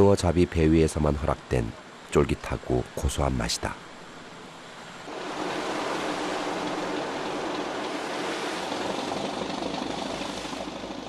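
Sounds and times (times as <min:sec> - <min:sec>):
sea waves rushing: 0:03.8 - 0:11.0.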